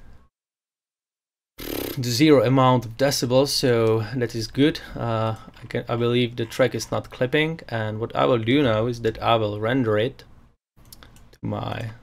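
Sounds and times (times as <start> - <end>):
man talking: 2.0 - 10.3, 11.4 - 12.0.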